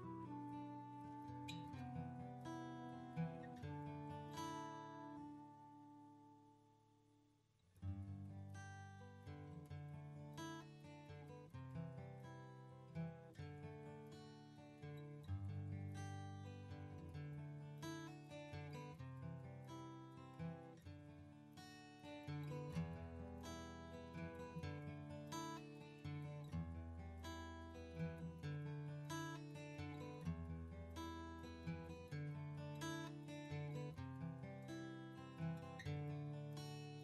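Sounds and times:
acoustic guitar music: 0.0s - 7.0s, 7.7s - 37.0s.

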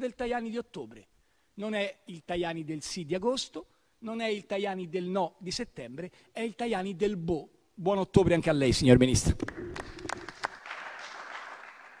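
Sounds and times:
people clapping: 9.3s - 12.0s.

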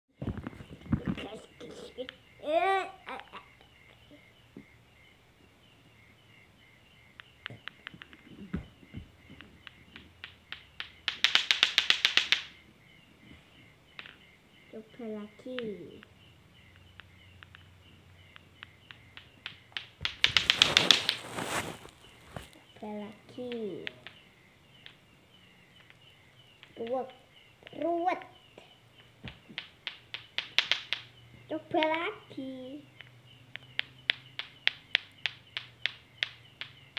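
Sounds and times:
clacker balls knocking together: 7.2s - 12.6s, 18.3s - 21.2s, 29.2s - 32.1s, 33.0s - 36.9s.

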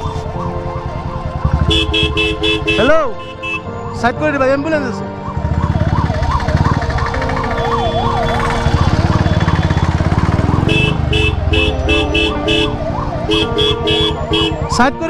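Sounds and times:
motorcycle engine running: 0.0s - 2.8s, 5.4s - 14.7s
ambulance siren yelping: 0.0s - 3.9s, 5.1s - 15.0s.

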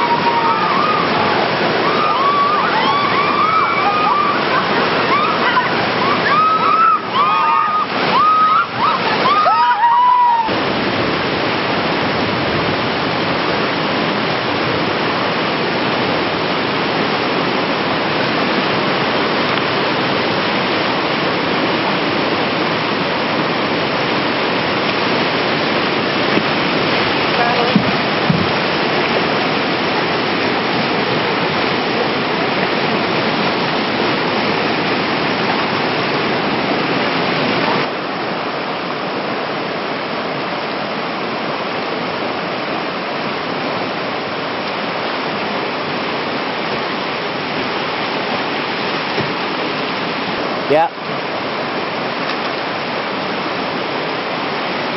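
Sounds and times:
whitewater rapids rushing: 0.0s - 54.9s.

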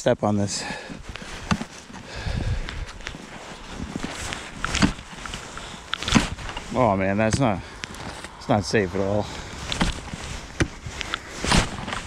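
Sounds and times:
boots crunching through snow: 0.6s - 12.0s.

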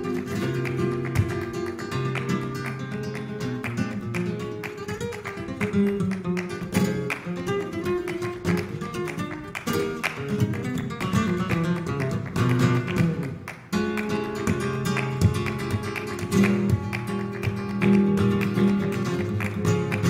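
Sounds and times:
flamenco guitar playing: 0.0s - 20.0s
sharp hand-clapping: 0.0s - 20.0s.

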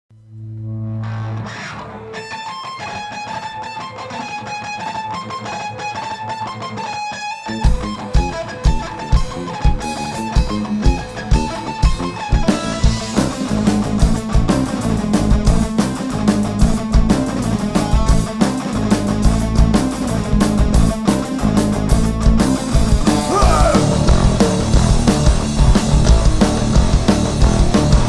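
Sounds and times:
electric guitar riff: 0.2s - 28.0s
rock band playing live: 1.0s - 28.0s.

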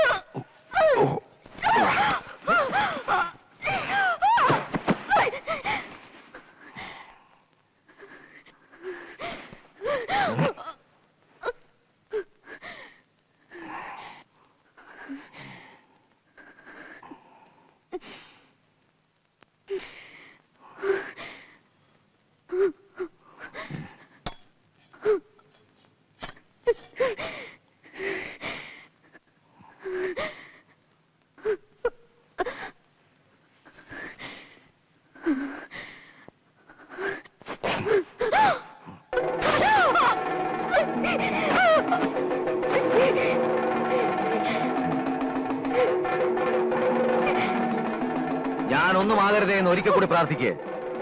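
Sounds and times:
woman crying out in distress: 38.2s - 47.7s.

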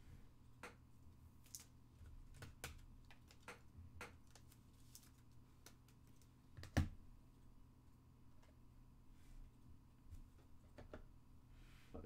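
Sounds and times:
cards clicking and tapping: 1.4s - 7.0s.

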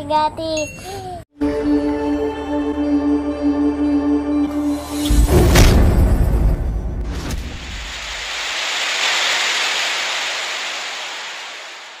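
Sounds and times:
rushing hissing whoosh: 7.1s - 12.0s.

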